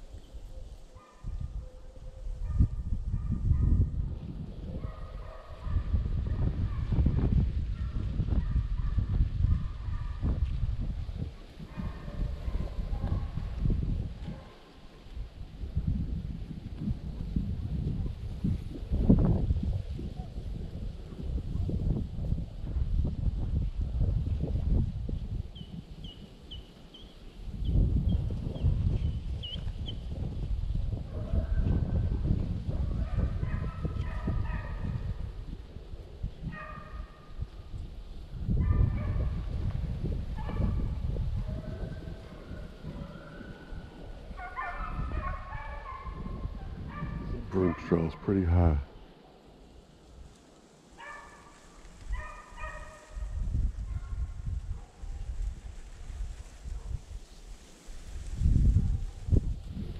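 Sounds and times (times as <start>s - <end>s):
wind buffeting microphone: 0.0s - 49.2s, 51.0s - 59.9s
distant hounds baying: 4.8s - 6.9s, 11.6s - 13.4s, 32.8s - 35.1s, 36.5s - 37.1s, 40.4s - 48.1s, 51.0s - 53.3s.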